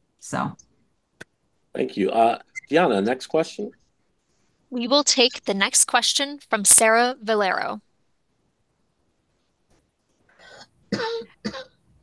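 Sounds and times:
person clearing throat coughing: 0:10.4 - 0:11.7.

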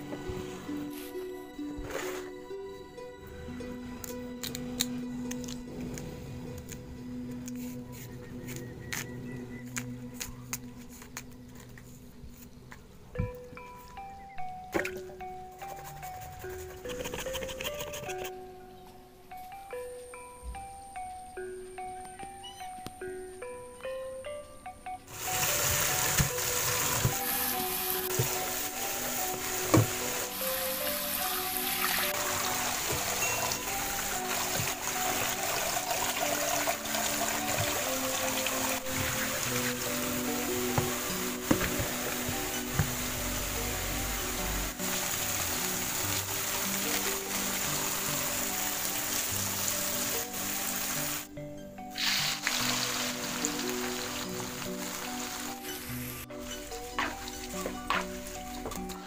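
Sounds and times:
background music: 0:00.0 - 0:59.0
tap water running into a bowl: 0:25.2 - 0:40.0.

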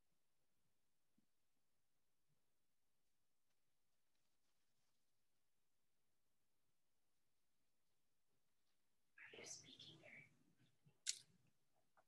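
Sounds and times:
faint whisper: 0:09.2 - 0:10.7.

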